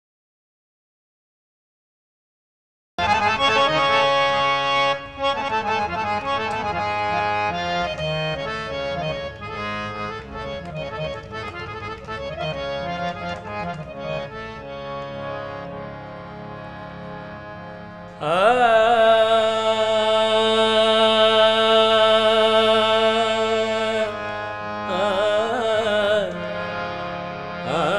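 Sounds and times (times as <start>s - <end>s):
harmonium melody: 3.0s - 27.9s.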